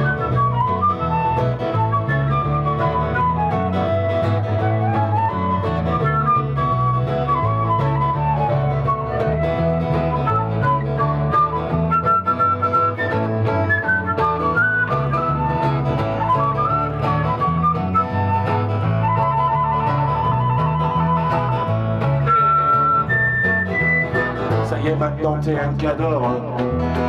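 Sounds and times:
flute solo: 0:00.0 - 0:24.6
bass guitar line: 0:00.0 - 0:27.0
guitar: 0:00.0 - 0:27.0.

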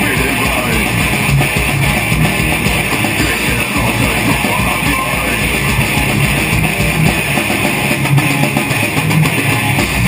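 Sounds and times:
bass guitar: 0:00.0 - 0:10.0
distorted electric guitars: 0:00.0 - 0:10.0
drum kit: 0:00.0 - 0:10.0.

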